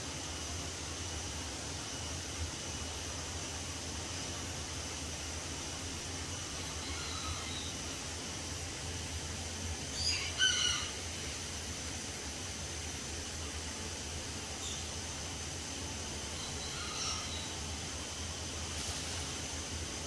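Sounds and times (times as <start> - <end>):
high-pitched whine: 0.0 - 20.0.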